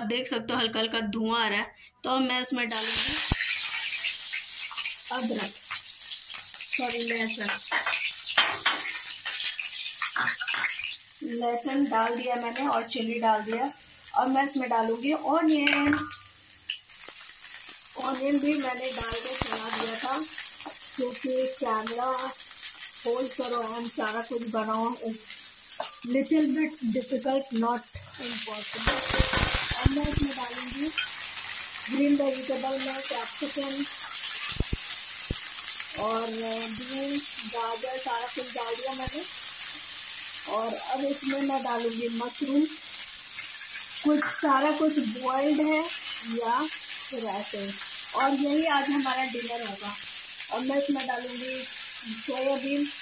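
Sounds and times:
garlic sizzling in hot oil: 0:02.7 - 0:53.0.

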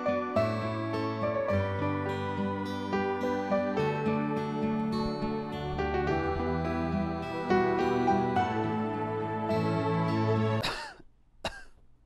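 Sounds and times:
soft instrumental music: 0:00.0 - 0:10.9
person coughing: 0:10.6 - 0:11.8.

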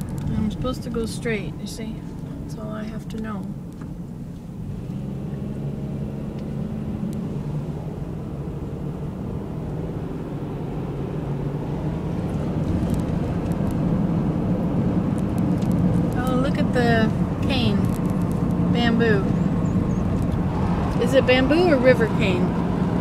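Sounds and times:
car engine and road noise hum: 0:00.0 - 0:23.0.

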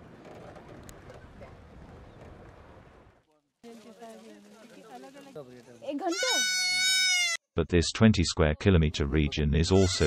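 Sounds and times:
goat kid bleating loudly: 0:06.0 - 0:07.4, 0:09.7 - 0:10.0
faint wavering bleats of herd: 0:09.8 - 0:10.0.

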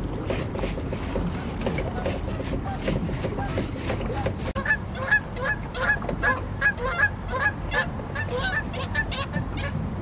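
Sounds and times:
geese honking: 0:04.6 - 0:09.8.

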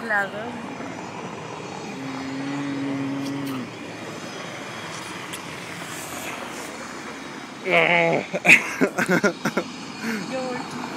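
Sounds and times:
low steady drone: 0:00.0 - 0:10.9
passing vehicles: 0:00.0 - 0:10.9.

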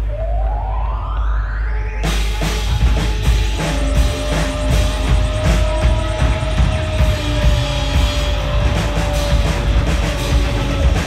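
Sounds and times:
low steady drone: 0:00.0 - 0:11.0
rising pitched tone: 0:00.0 - 0:11.0.

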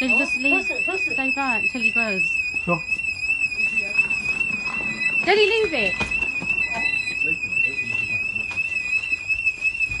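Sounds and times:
warbling electronic alarm tone: 0:00.0 - 0:10.0.

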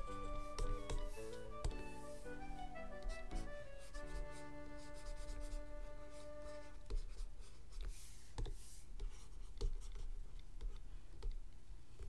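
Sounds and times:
scratchy stylus stroke: 0:00.0 - 0:06.8
stylus tapping on tablet: 0:00.1 - 0:01.9.

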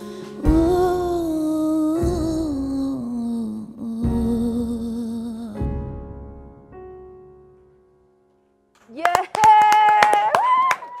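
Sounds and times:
people clapping: 0:08.8 - 0:11.0
high woo cheer: 0:09.3 - 0:11.0.

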